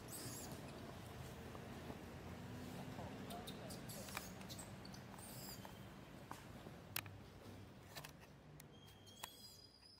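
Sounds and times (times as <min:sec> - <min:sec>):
faint high-pitched animal squeaks: 0:00.0 - 0:00.6, 0:03.3 - 0:05.9
low background noise: 0:00.0 - 0:09.9.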